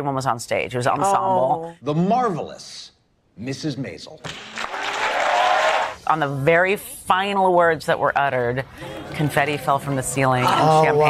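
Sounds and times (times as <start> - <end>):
person announcing: 1.0 - 1.7
audience applause: 4.3 - 6.0.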